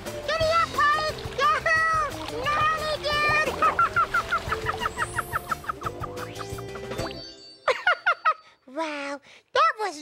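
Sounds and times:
cheerful background music: 0.0 - 8.5.

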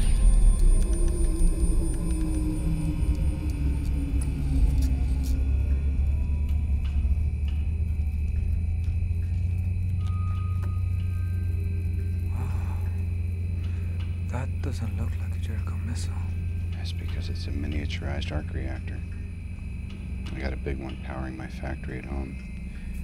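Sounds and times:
deep low drone: 0.0 - 23.0
film soundtrack music: 0.0 - 23.0
low tone sliding downward: 0.0 - 23.0.

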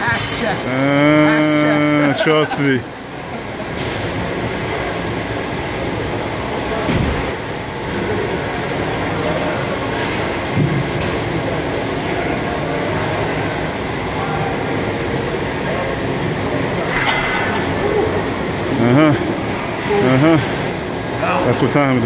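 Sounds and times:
busy weight room din: 0.0 - 22.0.

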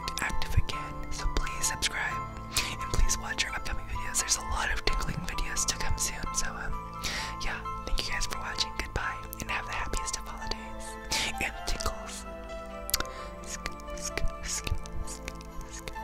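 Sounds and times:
person whispering closely: 0.0 - 6.7, 7.4 - 12.2, 12.9 - 16.0
background music with held notes: 0.0 - 16.0.

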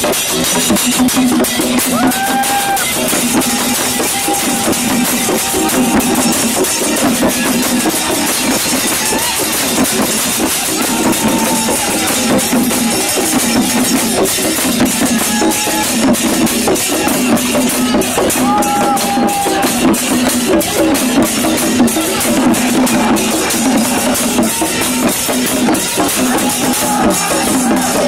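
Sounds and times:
barrel drums beaten fast: 0.0 - 28.0.

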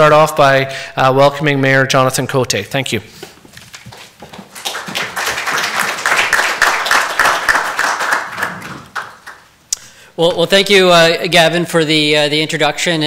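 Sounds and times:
audience applauding: 3.8 - 9.5.

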